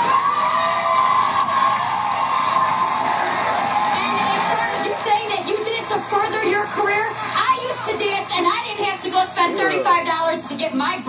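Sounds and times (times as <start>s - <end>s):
audience applauding and cheering: 0.0s - 9.8s.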